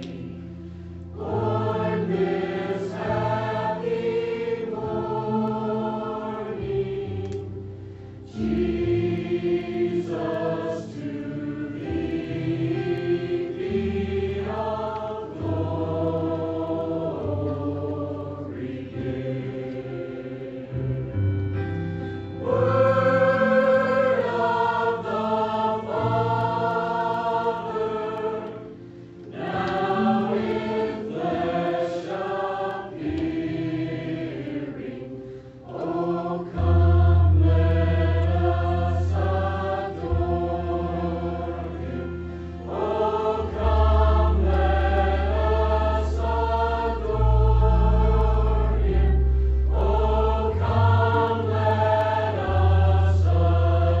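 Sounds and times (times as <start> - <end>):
mixed choir singing: 0.0 - 21.4, 22.4 - 54.0.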